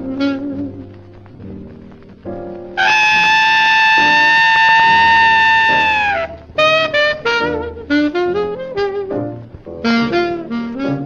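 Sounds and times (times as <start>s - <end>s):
jazz horn high note: 0.0s - 1.4s, 2.6s - 11.0s
quiet band accompaniment: 0.0s - 11.0s.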